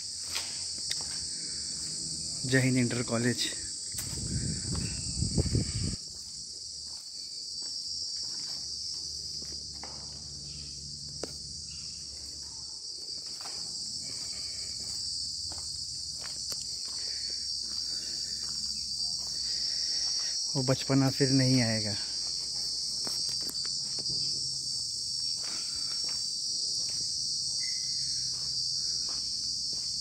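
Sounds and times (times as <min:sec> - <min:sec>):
insects droning: 0:00.0 - 0:30.0
footsteps on brick path: 0:00.2 - 0:02.0, 0:03.5 - 0:10.1, 0:13.1 - 0:20.4, 0:22.2 - 0:24.3, 0:28.3 - 0:30.0.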